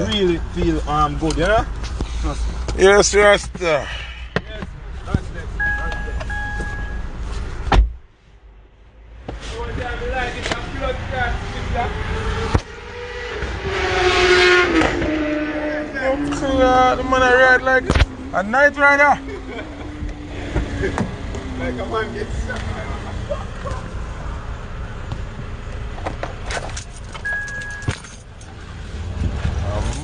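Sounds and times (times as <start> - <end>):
steady electronic beep: 5.6 - 7.2, 27.2 - 27.9
vehicle passing by: 8.9 - 25.0.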